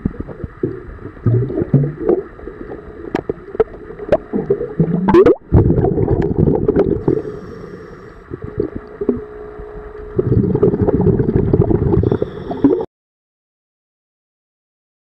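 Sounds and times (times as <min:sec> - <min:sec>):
underwater bubbles gurgling: 0:00.0 - 0:12.9.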